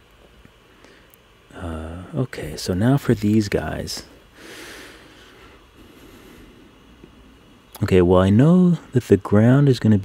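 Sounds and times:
computer cooling fan humming: 0:00.0 - 0:10.0.

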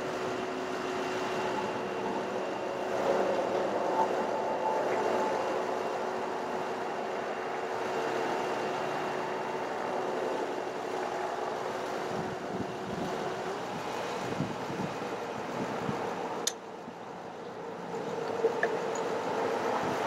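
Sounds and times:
truck engine humming: 0:00.0 - 0:19.9
faint steady whine: 0:00.0 - 0:20.0.

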